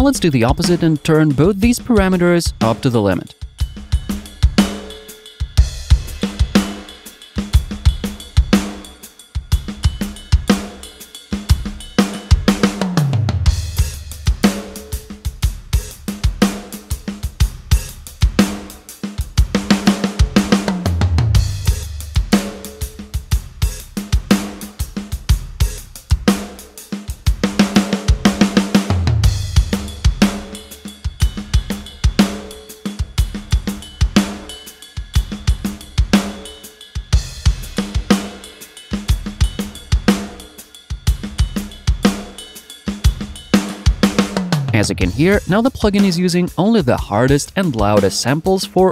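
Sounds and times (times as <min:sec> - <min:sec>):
tom fill: 0:00.0 - 0:03.3, 0:44.4 - 0:48.9
rock drum kit groove: 0:00.0 - 0:48.9.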